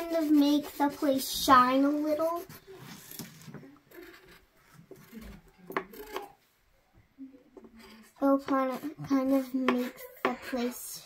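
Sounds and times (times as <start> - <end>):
crayon rubbing on paper: 0.0 - 6.2, 7.8 - 11.0.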